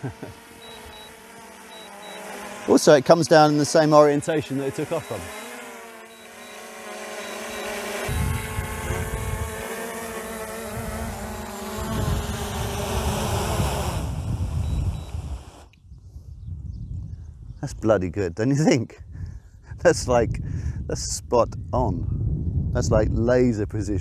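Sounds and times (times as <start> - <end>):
drone propellers buzzing: 0.0 - 15.8.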